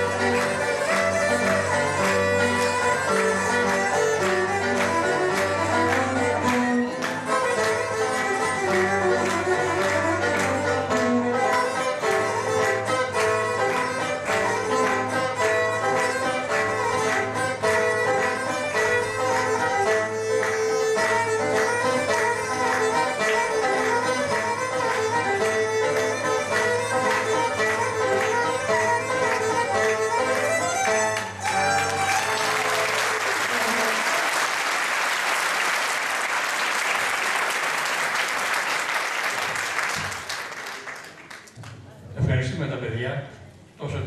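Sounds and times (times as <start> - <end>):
folk dance music on strings: 0.0 - 40.5
audience applause: 0.0 - 41.7.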